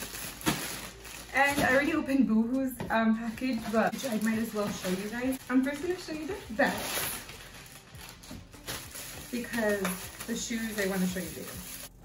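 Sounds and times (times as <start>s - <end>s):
plastic bag crinkling: 0.0s - 2.2s, 3.2s - 12.0s.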